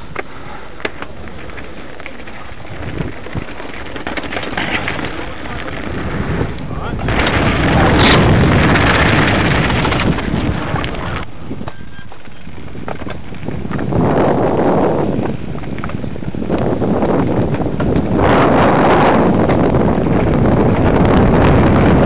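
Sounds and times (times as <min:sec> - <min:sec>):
wind rushing over microphone: 0:02.6 - 0:11.8, 0:12.5 - 0:22.0.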